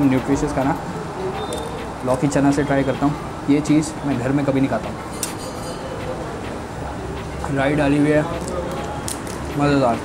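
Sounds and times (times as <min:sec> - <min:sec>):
eatery background noise: 0:00.0 - 0:10.0.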